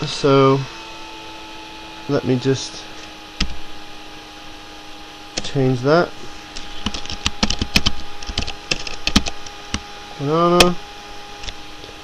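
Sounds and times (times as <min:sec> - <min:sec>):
computer keyboard keys clicking: 0:06.8 - 0:09.3.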